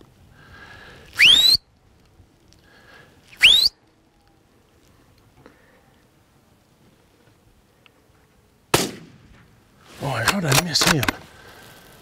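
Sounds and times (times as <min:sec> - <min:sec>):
rifle shot with echo: 0:08.7 - 0:09.5.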